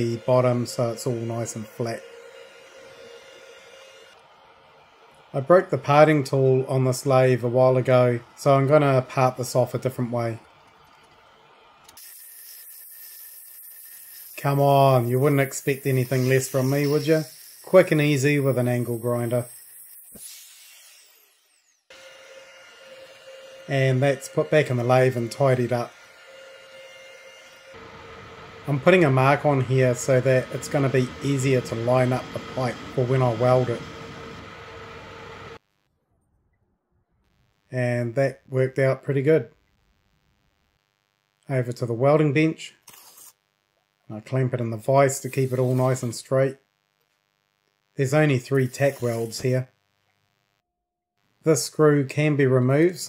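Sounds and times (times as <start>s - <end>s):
angle grinder cutting steel: 0.0s - 5.1s, 11.9s - 35.6s
metal lathe running: 0.0s - 6.5s, 20.7s - 35.6s.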